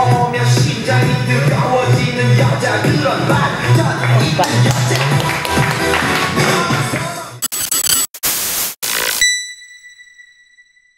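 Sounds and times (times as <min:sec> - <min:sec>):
music: 0:00.0 - 0:07.4
tv static hiss: 0:07.5 - 0:09.2.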